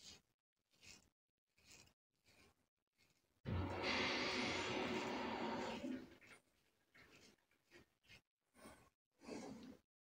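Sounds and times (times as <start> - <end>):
razor scraping stubble: 0.0 - 5.4.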